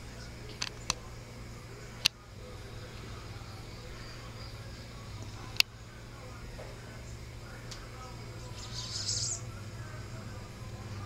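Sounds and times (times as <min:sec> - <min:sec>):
small bird chirping: 0:08.4 - 0:09.5.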